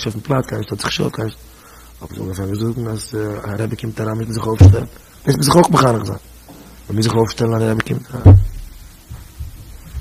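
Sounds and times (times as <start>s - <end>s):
loud low thump: 4.6s - 4.9s, 8.2s - 9.7s.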